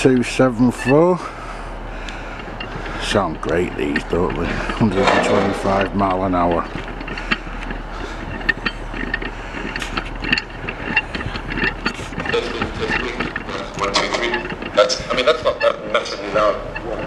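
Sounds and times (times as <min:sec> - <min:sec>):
people talking: 0:00.0 - 0:01.4, 0:03.0 - 0:06.7, 0:12.3 - 0:17.0
diesel locomotive idling: 0:00.0 - 0:17.0
clicks and knocks: 0:02.0 - 0:17.0.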